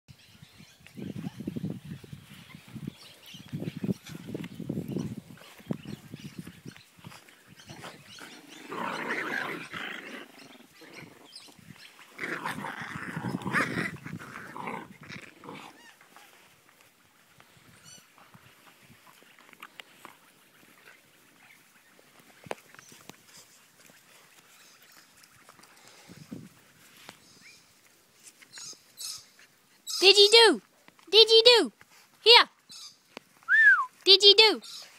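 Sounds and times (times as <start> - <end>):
dog play-growling: 7.7 - 16.0.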